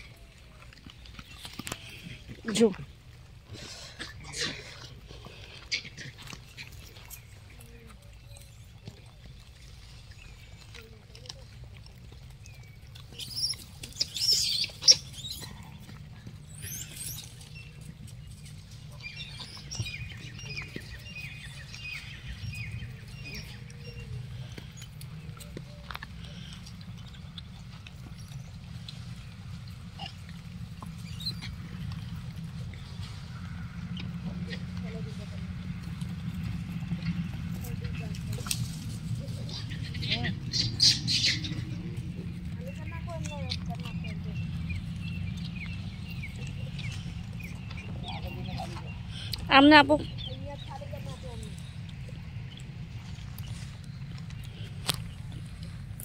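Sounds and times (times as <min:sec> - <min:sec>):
animal squeaks and chirps: 0:13.1 - 0:15.8, 0:16.5 - 0:17.7, 0:39.4 - 0:41.7
steady low rumble: 0:14.7 - 0:56.0.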